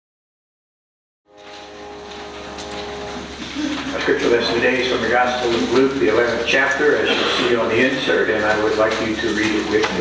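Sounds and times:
faint room noise: 0:01.3 - 0:10.0
steady electrical hum: 0:01.3 - 0:10.0.

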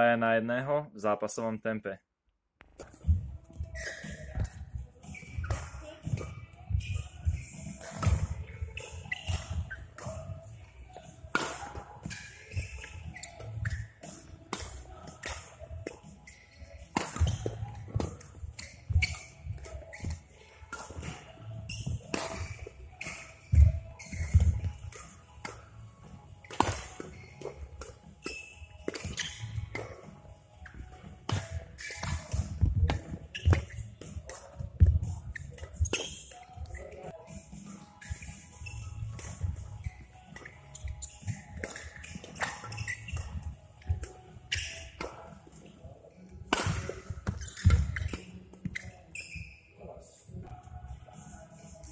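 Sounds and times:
rackets striking shuttlecock: 0:03.8 - 0:10.3, 0:11.0 - 0:25.7, 0:26.4 - 0:36.9, 0:39.2 - 0:45.5, 0:46.3 - 0:48.8.

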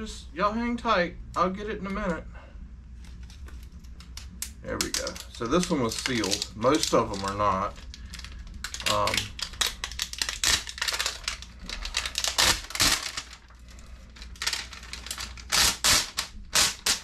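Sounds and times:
plastic sheets crackling: 0:03.0 - 0:17.0.

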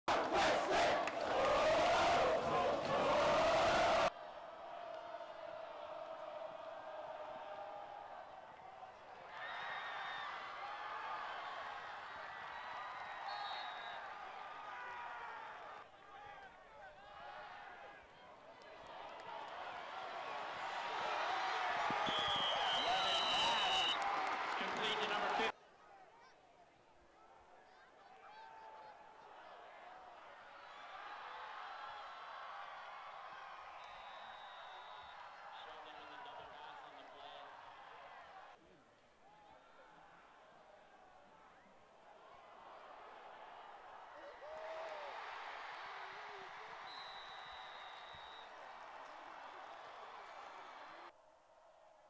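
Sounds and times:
crowd yelling and cheering: 0:00.0 - 0:25.6, 0:27.6 - 0:38.6, 0:39.3 - 0:51.2
quiet stadium background: 0:00.0 - 0:52.0
long shrill whistle: 0:13.2 - 0:14.0, 0:22.0 - 0:24.0, 0:33.8 - 0:35.2, 0:46.8 - 0:48.6.

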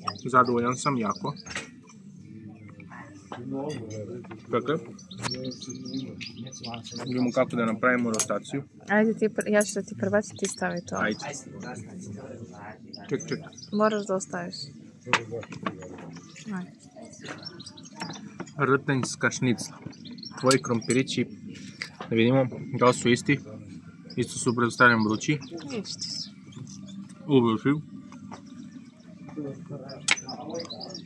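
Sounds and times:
men talking: 0:00.0 - 0:01.6, 0:02.2 - 0:08.8, 0:09.5 - 0:13.9, 0:14.8 - 0:31.0
low murmured voices: 0:00.0 - 0:31.0
small birds chirping: 0:00.0 - 0:31.0.

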